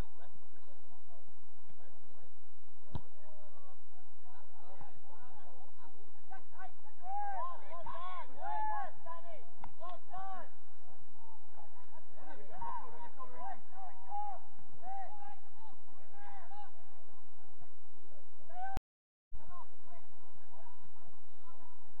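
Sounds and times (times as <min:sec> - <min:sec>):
voices calling and shouting: 0:00.0 - 0:18.8, 0:19.4 - 0:22.0.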